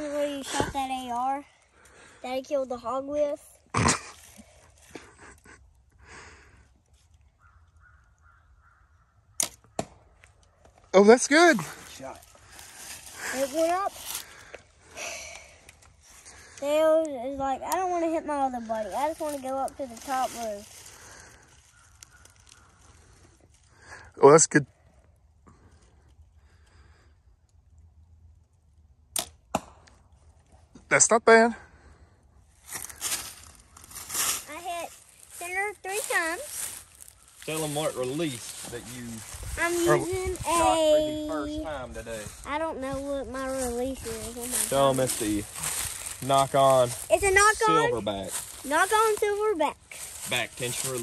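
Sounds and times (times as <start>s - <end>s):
arrow striking target: 9.4s - 10.0s, 29.1s - 30.0s
bowstring snap: 29.1s - 30.0s.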